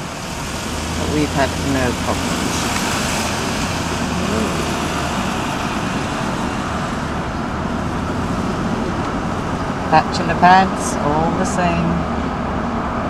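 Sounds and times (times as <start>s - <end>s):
car road and engine noise: 0.0s - 13.0s.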